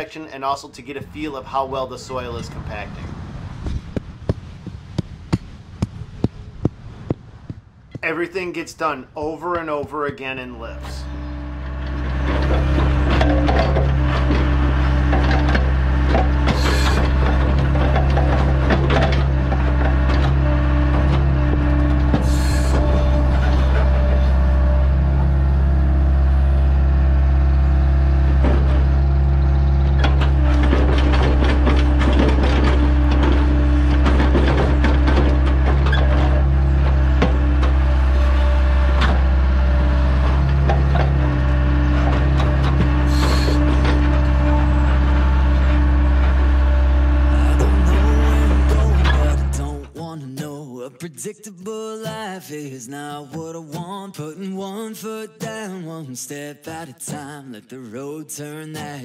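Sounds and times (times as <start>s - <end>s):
excavator engine running: 0.0s - 50.1s.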